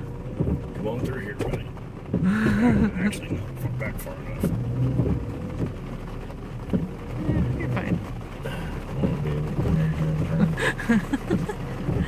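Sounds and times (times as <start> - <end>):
truck engine hum: 0.0 - 12.0.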